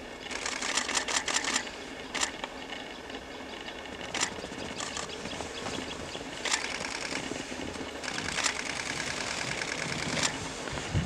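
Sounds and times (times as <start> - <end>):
sharp clicks: 0.3 - 2.6, 3.6 - 5.1, 6.4 - 7.2, 8.0 - 10.4.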